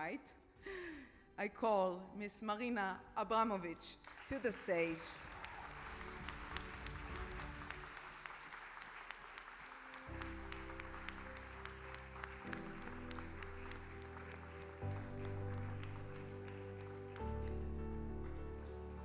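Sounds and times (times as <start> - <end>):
applause: 3.9 - 19.0.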